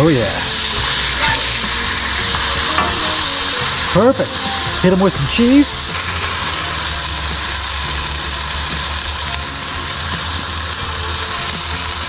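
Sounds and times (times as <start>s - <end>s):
burger patties sizzling on griddle: 0.0s - 12.0s.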